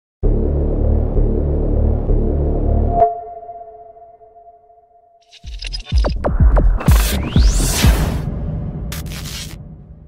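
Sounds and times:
pulsing bass beat: 5.9 - 7.8.

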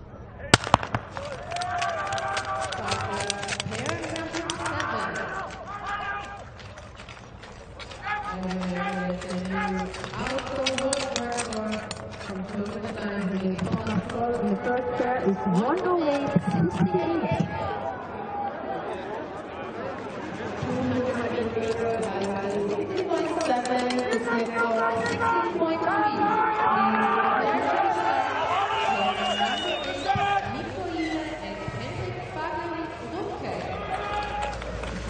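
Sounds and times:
voices shouting: 0.6 - 6.8, 20.8 - 32.3, 33.4 - 35.0
starting gun cracks: 0.6 - 14.2
sharp claps and clicks: 0.6 - 14.3, 33.8 - 35.0.

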